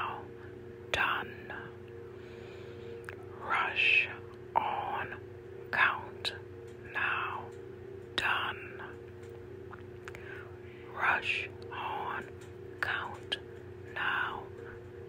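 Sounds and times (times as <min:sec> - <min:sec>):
person whispering a chant: 0:00.0 - 0:00.3, 0:00.9 - 0:01.8, 0:03.0 - 0:07.5, 0:08.2 - 0:09.0, 0:10.1 - 0:14.8
low hum: 0:00.0 - 0:15.0.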